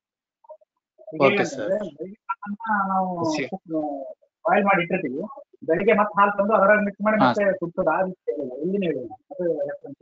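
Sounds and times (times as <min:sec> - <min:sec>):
lecture audio: 0:00.0 - 0:10.0.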